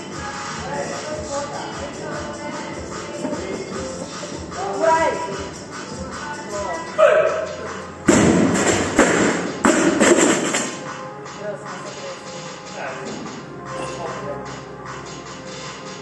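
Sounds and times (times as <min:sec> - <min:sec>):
gym music with vocals: 0:00.0 - 0:16.0
barbell crashing on gym floor: 0:08.1 - 0:10.8.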